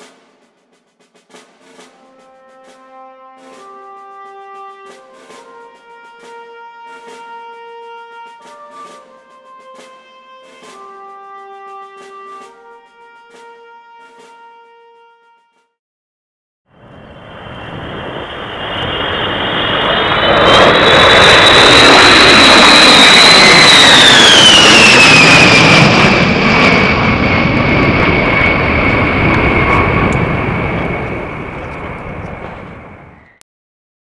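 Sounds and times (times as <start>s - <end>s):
high jet whine: 16.8s - 33.4s
jet bomber flying past: 16.8s - 33.4s.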